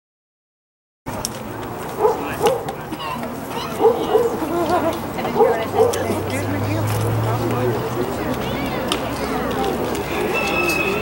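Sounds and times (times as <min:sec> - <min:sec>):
voices of spectators: 0:01.1 - 0:11.0
dog barking: 0:02.0 - 0:04.5, 0:05.4 - 0:06.2.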